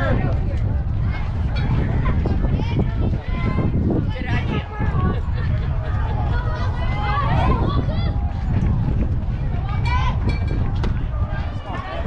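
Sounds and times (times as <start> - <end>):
heavy low rumble: 0.0 - 12.0.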